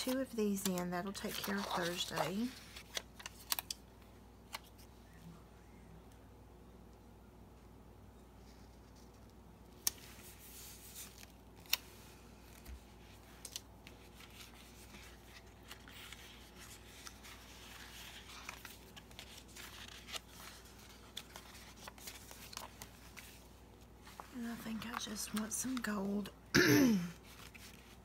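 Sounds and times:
paper rustling: 0.0s - 3.8s, 8.4s - 26.2s, 27.2s - 28.0s.

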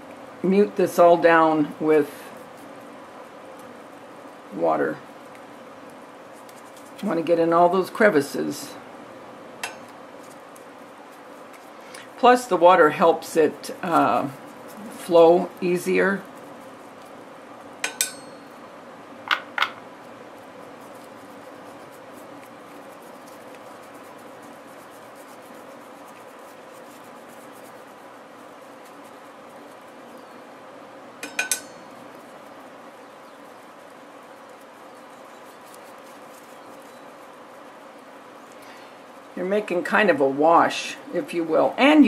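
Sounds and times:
faint room hum: 0.0s - 42.0s.

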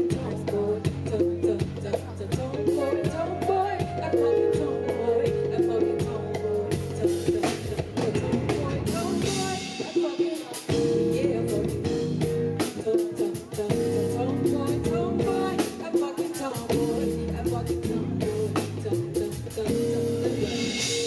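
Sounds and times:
live band playing: 0.0s - 21.0s
woman singing: 0.0s - 21.0s.

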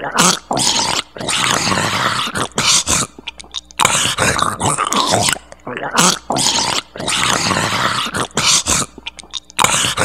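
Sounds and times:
monster gurgling growl: 0.0s - 3.0s, 6.0s - 8.9s.

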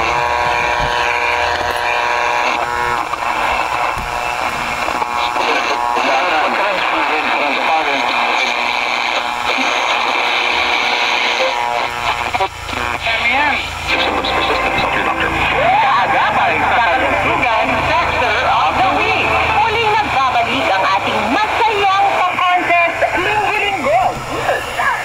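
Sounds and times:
radio hiss: 0.0s - 25.0s
radio steady tone: 0.0s - 25.0s
voice talking on radio: 0.0s - 25.0s.

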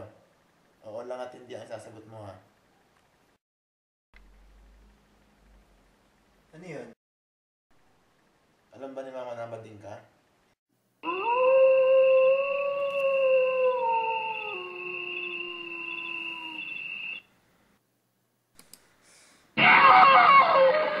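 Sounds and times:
long drawn-out howl: 11.0s - 17.2s, 19.6s - 21.0s
steady high tone: 14.2s - 17.3s.

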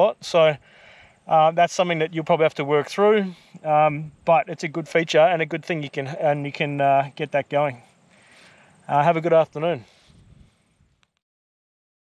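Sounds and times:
outdoor background hiss: 0.0s - 11.2s.

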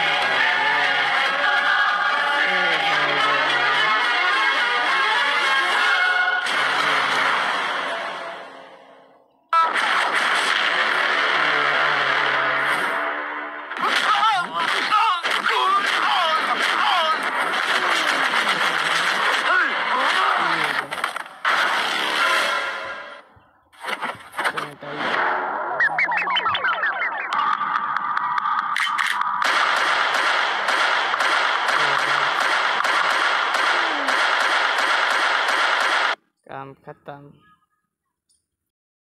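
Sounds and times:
rapid crackling sound effects: 9.6s - 13.0s, 13.7s - 22.6s, 23.7s - 36.2s
voices: 13.8s - 21.1s, 31.7s - 32.5s
rising warble: 25.2s - 29.4s.

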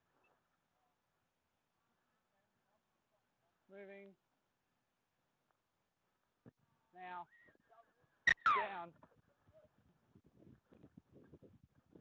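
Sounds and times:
high whistle: 8.3s - 8.7s.

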